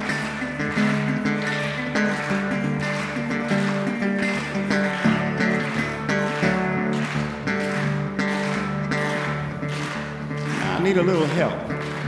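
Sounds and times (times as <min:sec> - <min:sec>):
fingerpicked resonator guitar blues: 0:00.0 - 0:10.6.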